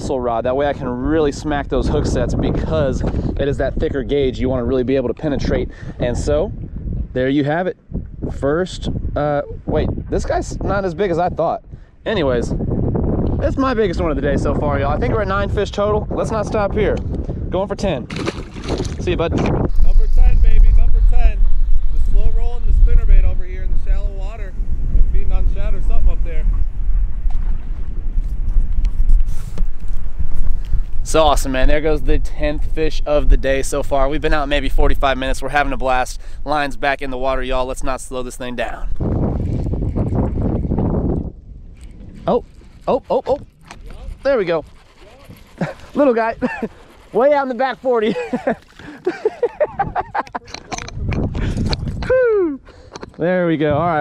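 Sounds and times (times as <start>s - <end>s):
wind buffeting microphone: 0.0s - 54.0s
man laughing: 45.5s - 46.9s, 47.9s - 50.8s, 52.0s - 52.6s
man exclaiming: 52.0s - 52.6s.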